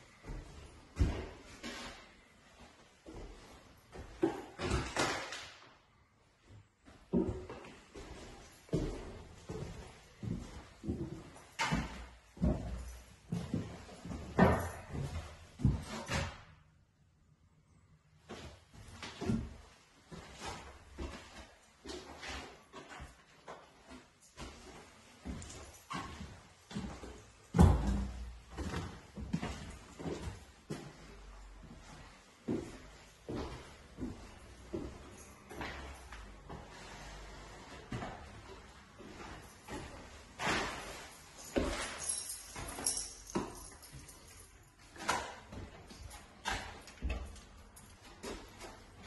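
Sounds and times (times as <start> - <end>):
footsteps on wooden floorboards: 6.9 - 15.9
scuffing scrape on floor: 36.4 - 42.3.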